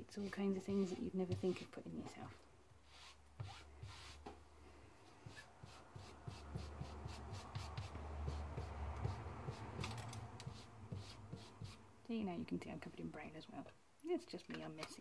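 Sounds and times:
ink pad scuffing on fabric: 0:00.2 - 0:04.3, 0:05.0 - 0:09.6.

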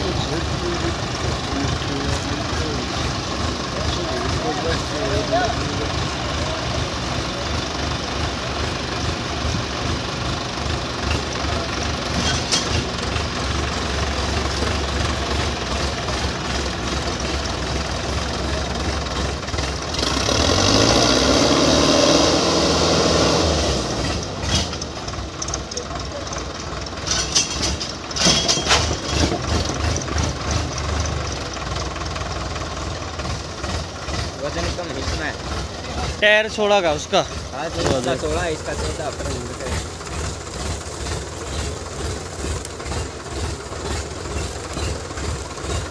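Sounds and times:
voices calling out: 0:00.0 - 0:21.6, 0:23.9 - 0:45.9
diesel engines idling: 0:00.0 - 0:45.9
engine revving: 0:17.5 - 0:25.7, 0:33.2 - 0:45.9.

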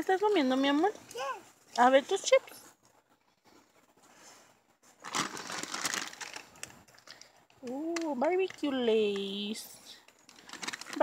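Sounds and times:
chip bag crinkling: 0:05.0 - 0:09.3, 0:10.0 - 0:11.0.

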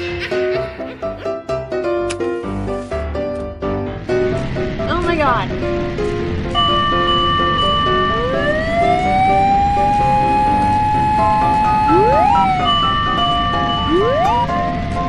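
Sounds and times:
bouncy background melody: 0:00.0 - 0:15.0
fire engine siren wailing: 0:06.6 - 0:14.8.

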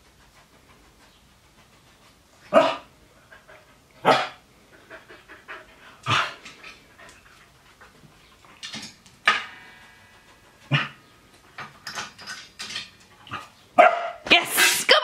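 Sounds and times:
dog barking: 0:02.5 - 0:02.9, 0:04.0 - 0:04.4, 0:13.8 - 0:14.2.

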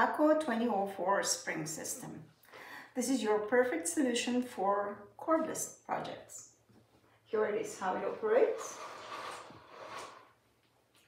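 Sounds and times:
fabric shade rustling: 0:07.8 - 0:10.4.

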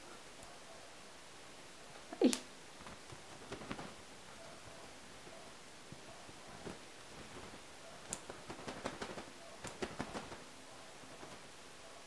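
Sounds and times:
sharp taps: 0:02.8 - 0:04.0, 0:06.6 - 0:10.4.

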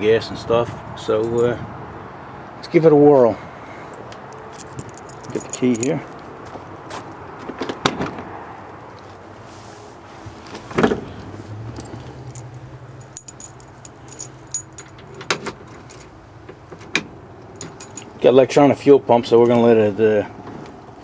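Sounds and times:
key into ignition lock: 0:04.3 - 0:06.0, 0:17.6 - 0:18.2
keys jangling on ring: 0:04.3 - 0:06.2, 0:11.8 - 0:16.1, 0:17.6 - 0:18.2.

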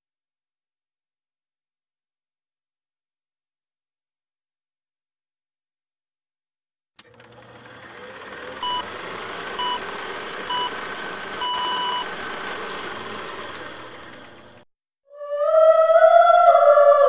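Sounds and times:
electronic countdown beeps: 0:08.6 - 0:08.9, 0:09.6 - 0:12.2.

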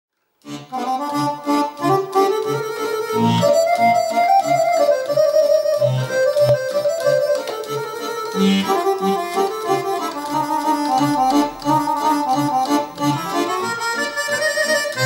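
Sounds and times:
accordion bass notes: 0:00.4 - 0:15.0
accordion melody: 0:00.4 - 0:15.0.

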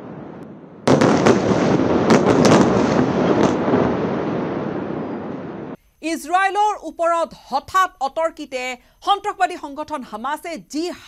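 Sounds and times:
explosion with rolling rumble: 0:00.0 - 0:05.8
sharp cracks: 0:00.4 - 0:04.3.

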